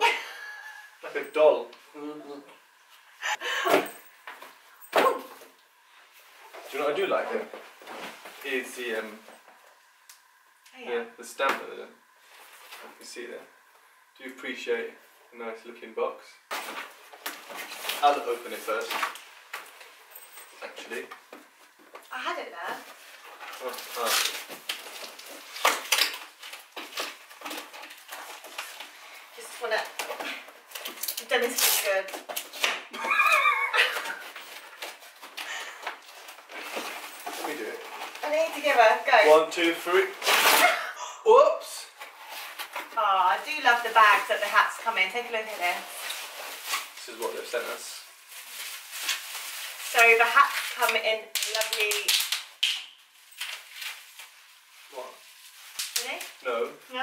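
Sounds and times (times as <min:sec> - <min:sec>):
bubble wrap crinkling: 0:16.5 - 0:40.9, 0:41.9 - 0:57.0
cardboard rustling and scraping: 0:33.8 - 0:40.6.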